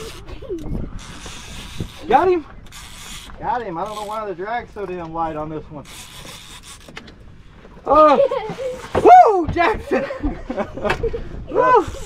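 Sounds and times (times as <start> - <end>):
fishing reel drag giving line: 0.9 - 4.3
man shouting: 9.0 - 9.8.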